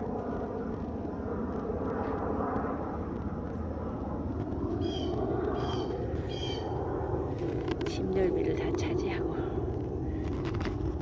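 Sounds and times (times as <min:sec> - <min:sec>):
distant traffic rumble: 0:00.0 - 0:11.0
bird calls: 0:04.8 - 0:06.8.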